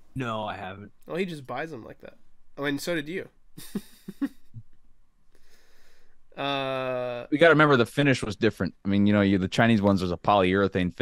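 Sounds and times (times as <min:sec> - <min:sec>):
faint breath: 0:05.3 - 0:06.3.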